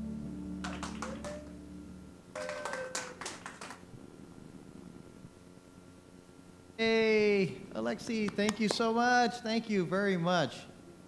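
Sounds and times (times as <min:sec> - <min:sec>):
final music chord: 0:00.0 - 0:02.1
people clapping sparsely: 0:00.6 - 0:01.6, 0:02.4 - 0:03.8.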